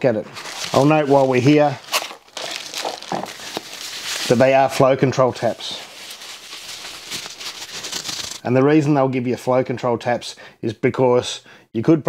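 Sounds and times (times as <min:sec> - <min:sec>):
plastic bag crinkling: 0:00.3 - 0:08.4.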